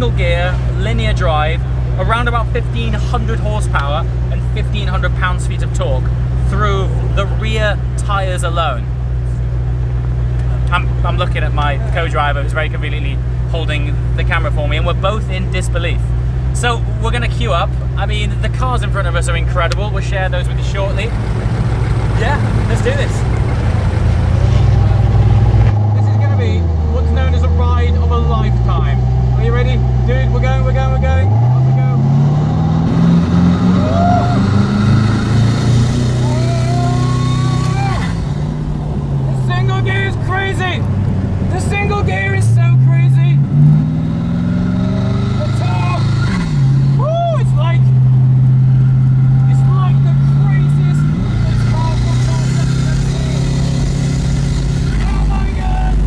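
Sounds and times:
car engine revving: 0.0s - 56.0s
voices: 10.4s - 24.0s, 36.0s - 38.2s, 39.1s - 43.5s, 45.2s - 46.3s, 47.0s - 48.0s, 49.1s - 53.8s, 54.8s - 56.0s.

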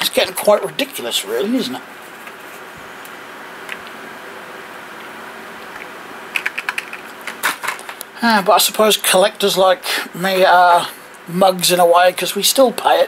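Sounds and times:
fan hum: 0.0s - 13.0s.

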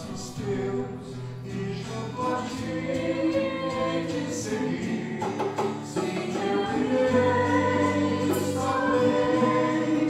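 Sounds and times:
acoustic guitar: 0.0s - 10.0s
voices singing together: 0.0s - 10.0s.

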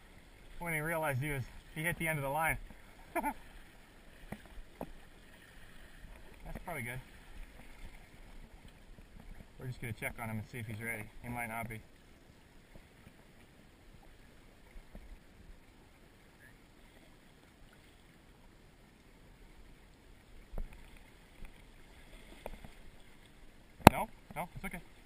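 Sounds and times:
river water flowing: 0.0s - 25.0s.

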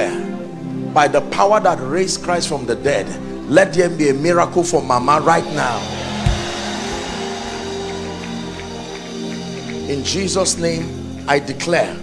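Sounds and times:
low thump: 6.2s - 7.5s.

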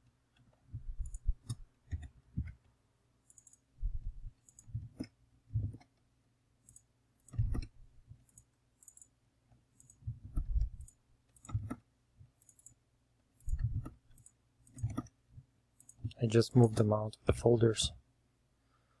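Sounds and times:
computer mouse clicking: 0.3s - 6.0s, 6.6s - 12.8s, 13.4s - 15.2s, 15.8s - 16.8s.

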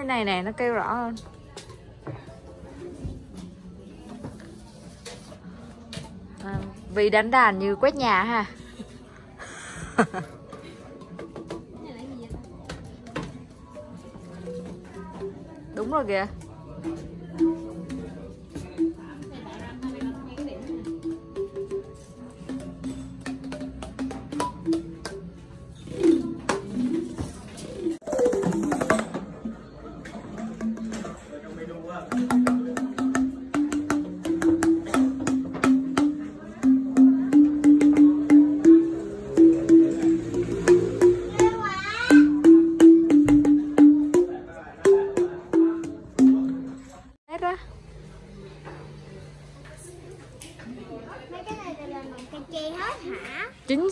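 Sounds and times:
bamboo xylophone notes: 14.0s - 47.2s
mallet clicks: 19.8s - 29.5s, 32.1s - 46.9s.

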